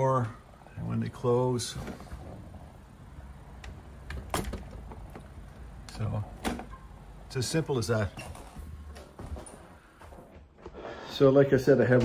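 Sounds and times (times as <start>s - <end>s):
door clicks and knocks: 3.6s - 5.6s, 6.3s - 6.8s.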